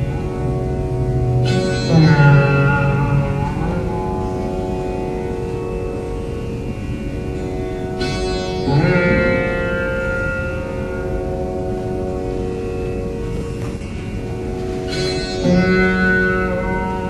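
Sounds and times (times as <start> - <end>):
steady ringing drone: 0.0 - 17.0.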